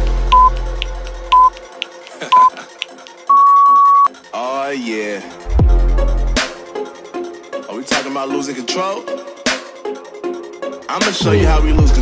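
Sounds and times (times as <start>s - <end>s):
electronic background music: 0.0s - 12.0s
timer countdown beeps: 0.3s - 0.6s, 1.3s - 1.6s, 2.3s - 2.5s, 3.3s - 4.1s.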